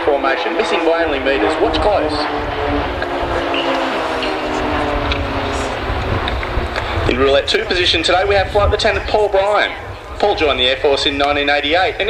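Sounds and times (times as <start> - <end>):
propeller aircraft drone: 0.0 - 12.0
low rumble: 0.8 - 11.2.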